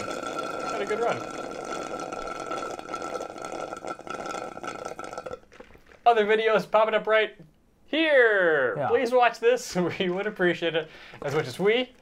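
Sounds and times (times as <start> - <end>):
slurping through a straw: 0.0 - 6.0.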